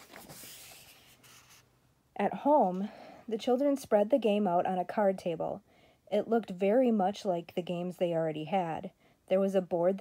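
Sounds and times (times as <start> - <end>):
book page turning: 0.0 - 1.7.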